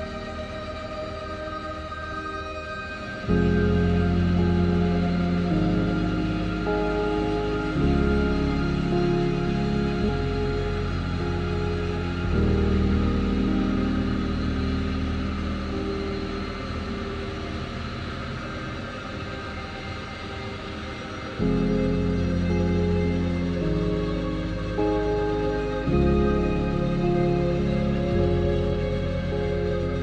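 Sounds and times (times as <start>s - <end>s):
slow sustained chords music: 0.0s - 30.0s.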